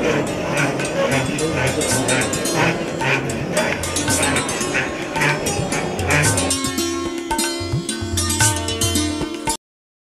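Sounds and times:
stringed instrument struck with beaters: 0.0 - 9.6.

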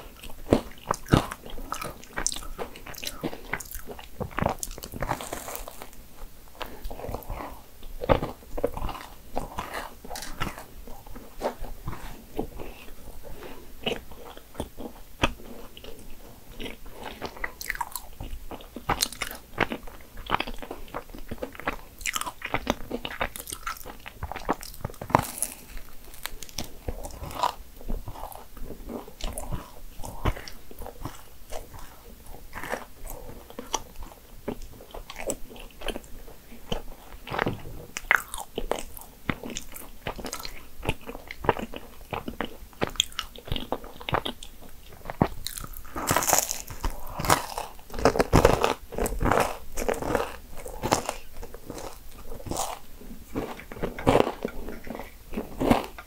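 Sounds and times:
chewing with wet mouth clicks: 0.1 - 5.9, 6.6 - 56.0.

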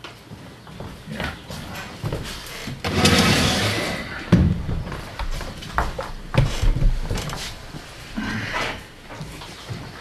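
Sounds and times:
knocks and shuffling movement: 0.0 - 10.0
loud scraping rush: 2.9 - 4.2.

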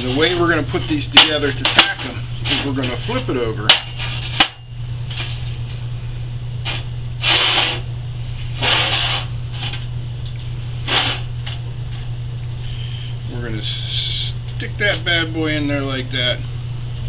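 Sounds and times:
metal scraping on metal: 0.0 - 4.5, 6.7 - 7.8, 8.6 - 9.8, 10.8 - 11.3
steady low hum: 0.0 - 17.0.

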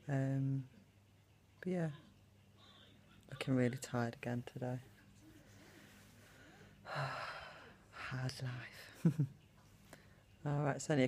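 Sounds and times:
woman sighing: 6.4 - 7.9.

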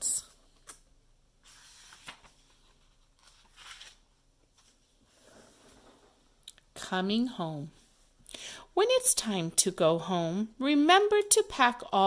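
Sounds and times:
book pages turning: 0.3 - 6.2.

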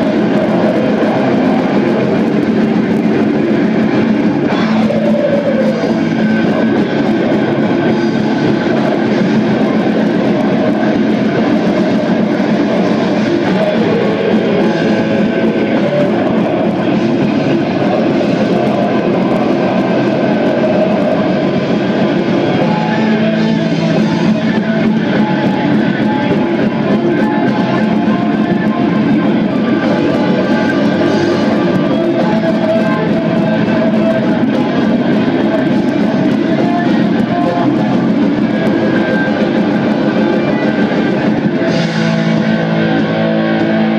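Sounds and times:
distorted electric guitars: 0.0 - 43.9
drums: 0.0 - 43.9.

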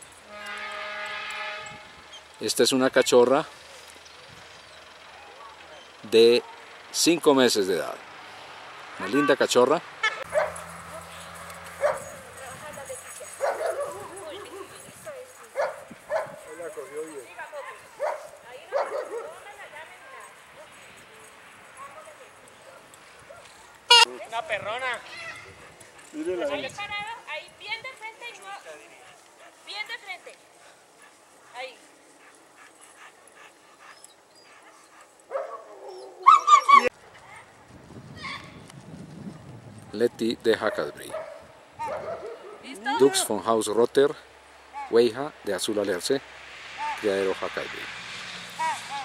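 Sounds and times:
dog yipping and barking: 10.2 - 11.2, 11.8 - 12.2, 13.2 - 14.7, 15.6 - 16.4, 35.3 - 36.9, 41.2 - 42.7
dog whining: 35.8 - 36.9.

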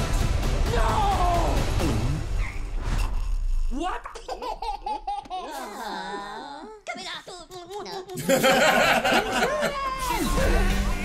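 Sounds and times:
cartoon-voiced giggling: 4.1 - 6.6, 7.6 - 10.1.

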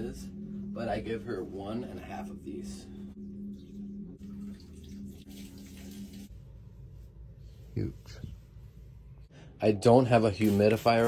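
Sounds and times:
water pouring into plant pot: 3.5 - 6.3.

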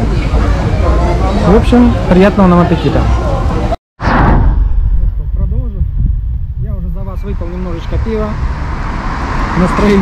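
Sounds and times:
low traffic rumble: 0.0 - 10.0
car passing close by: 7.7 - 10.0.

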